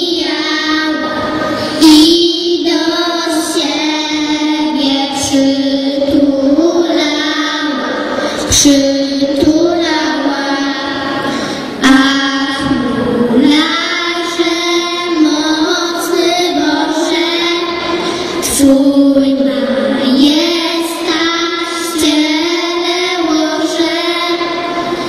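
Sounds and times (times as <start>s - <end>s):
girls singing a carol: 0.0s - 25.0s.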